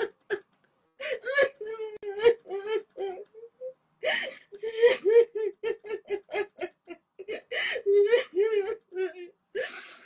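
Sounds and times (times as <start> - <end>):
woman sobbing: 0.0 - 10.0.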